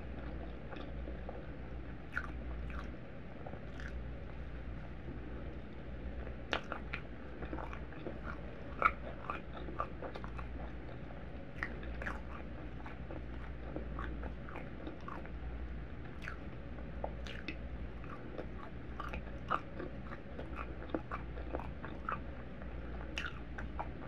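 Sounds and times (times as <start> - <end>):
chewing food: 0.0 - 24.0
wet mouth clicks: 2.1 - 2.9, 3.7 - 4.0, 6.5 - 11.0, 17.2 - 22.2, 23.2 - 23.9.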